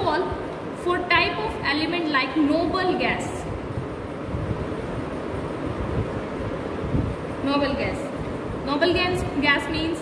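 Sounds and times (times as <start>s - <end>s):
low rumble with hiss: 0.0s - 10.0s.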